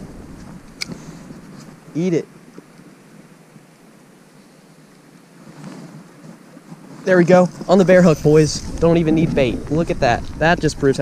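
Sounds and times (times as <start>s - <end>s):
faint wind noise on microphone: 0.0s - 2.0s, 5.4s - 11.0s
soft handling noise: 5.4s - 8.9s.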